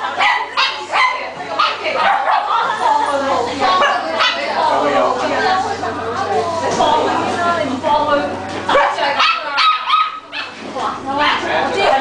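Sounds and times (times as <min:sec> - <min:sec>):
people chattering: 0:00.0 - 0:12.0
small dog yapping: 0:08.8 - 0:10.6.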